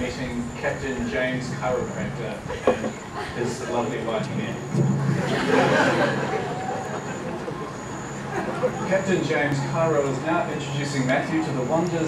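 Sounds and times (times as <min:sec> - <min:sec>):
faint voices: 0:00.0 - 0:12.0
outdoor background noise: 0:00.0 - 0:12.0.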